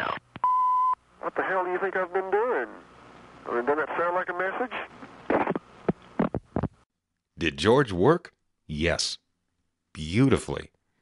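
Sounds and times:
buzzing hum on telephone line: 0.0s - 6.8s.

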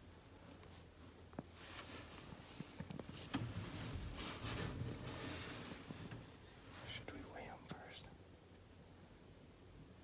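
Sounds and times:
person whispering: 6.8s - 8.2s.

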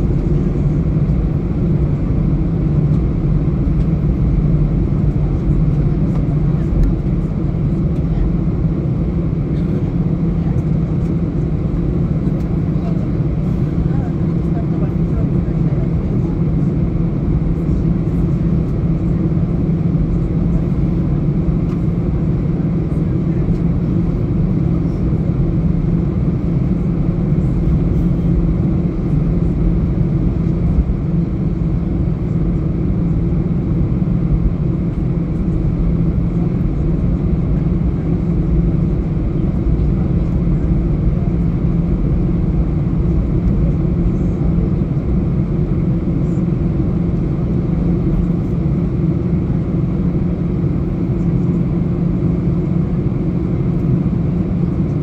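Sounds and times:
jet engines droning in cabin: 0.0s - 55.0s.

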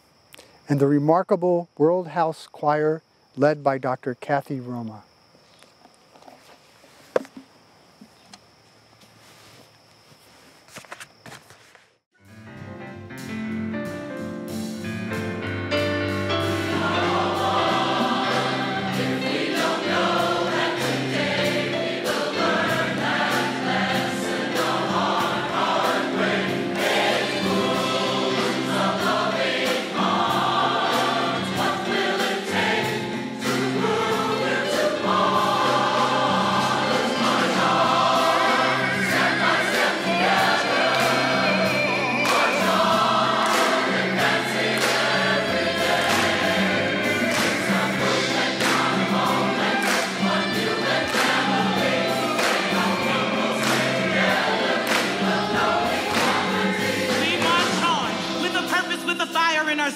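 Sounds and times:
instrumental accompaniment with beat: 12.4s - 59.6s
choir singing: 16.0s - 59.9s.

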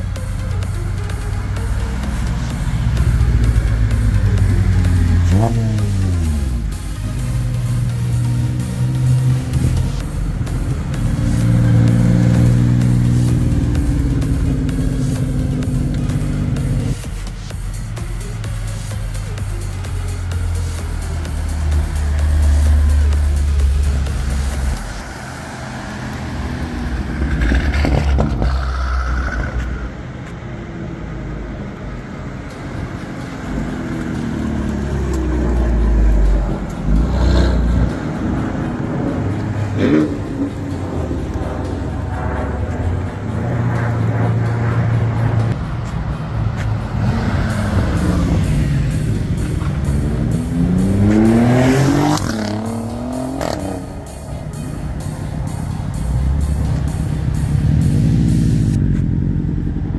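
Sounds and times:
car engines revving: 0.0s - 59.9s.

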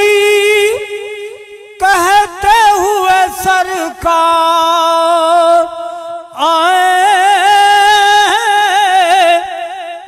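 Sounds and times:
man reciting devotional poem: 0.0s - 10.0s.

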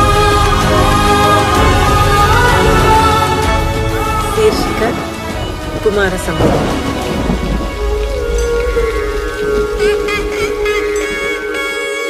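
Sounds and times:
heavy rain: 0.0s - 12.0s
low rumble: 1.6s - 11.7s.

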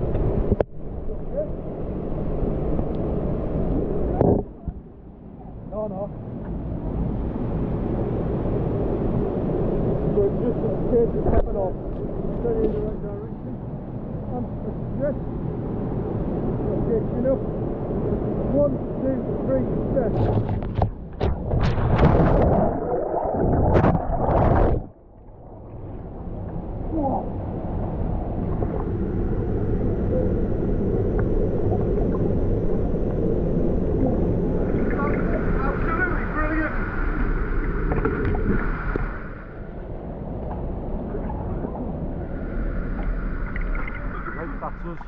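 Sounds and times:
muffled churning white water: 0.0s - 45.0s
splashing into water: 21.2s - 25.9s.

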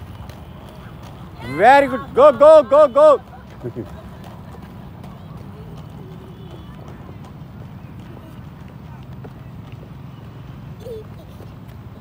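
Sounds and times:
roller-skate wheels on asphalt: 0.0s - 12.0s.

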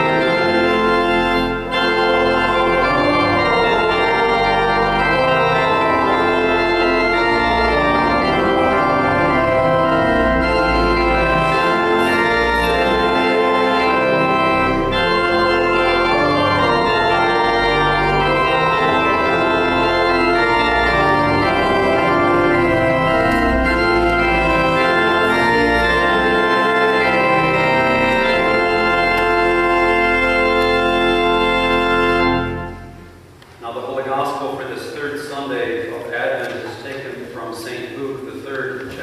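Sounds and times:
church organ playing chords: 0.0s - 38.5s.

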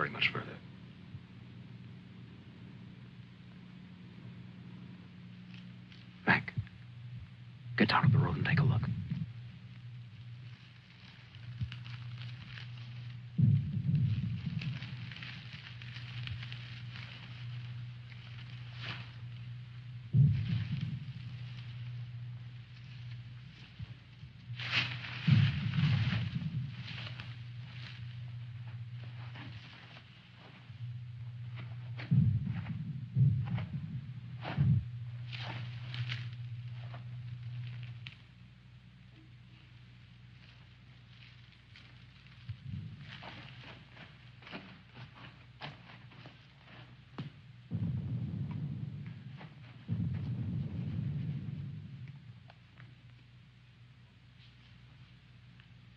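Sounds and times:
low hum: 0.0s - 55.9s
brush and twigs crackling: 4.6s - 7.8s, 8.5s - 47.8s
scuffing footsteps: 10.9s - 38.1s, 41.6s - 51.9s
dull thumps: 11.4s - 38.1s, 42.5s - 53.0s.

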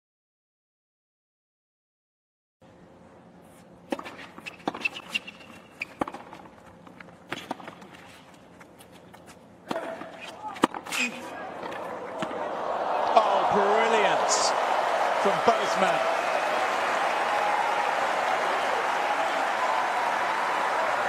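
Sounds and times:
crowd noise: 11.0s - 21.0s.

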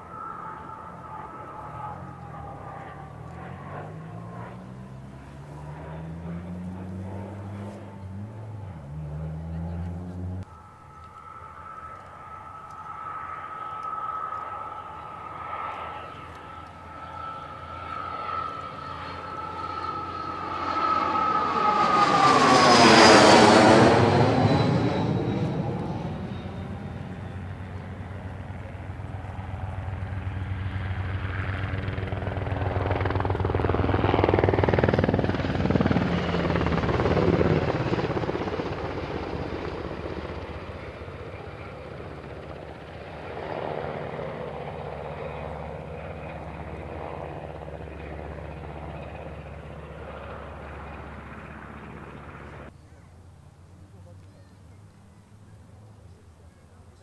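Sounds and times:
aircraft flying low past: 0.0s - 57.0s.

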